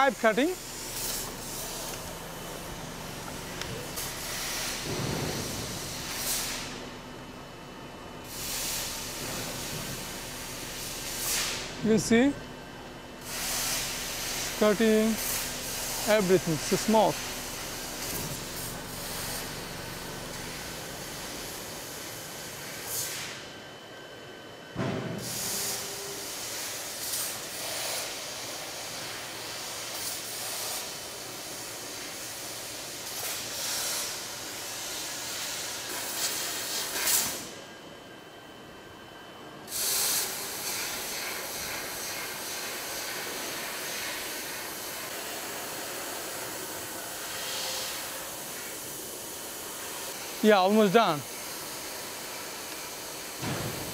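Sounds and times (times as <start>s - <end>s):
laser cutter gas jet hissing: 0.0s - 6.8s, 8.2s - 12.4s, 13.2s - 23.4s, 25.1s - 37.6s, 39.7s - 53.9s.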